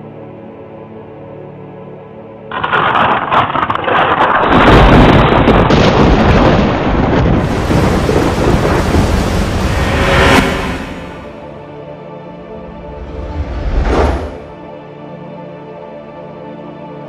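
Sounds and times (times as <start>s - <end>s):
deep rolling thunder rumble: 2.5s - 11.6s
thunder crackling: 2.5s - 11.6s
rain hiss: 7.2s - 11.2s.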